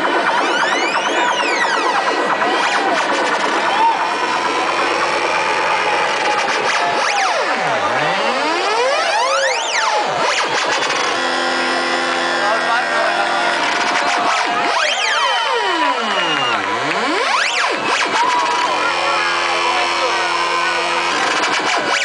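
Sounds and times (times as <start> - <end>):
electronic music over sound system: 0.0 - 22.0
synthesizer tones sweeping in pitch: 0.0 - 22.0.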